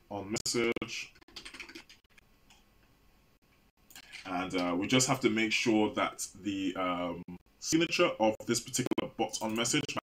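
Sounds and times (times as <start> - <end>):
computer keyboard keystrokes: 1.3 - 2.0.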